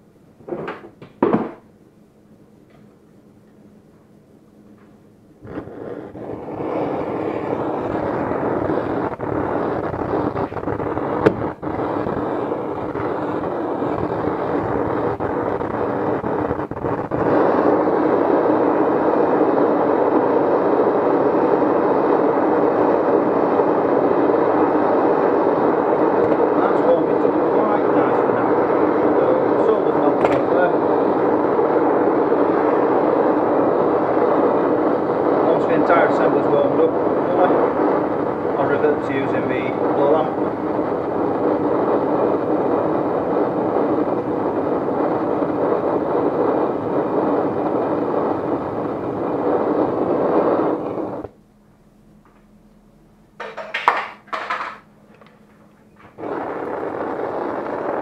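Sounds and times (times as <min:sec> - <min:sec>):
blowtorch flame rushing: 0:05.3 - 0:51.4, 0:53.4 - 0:58.0.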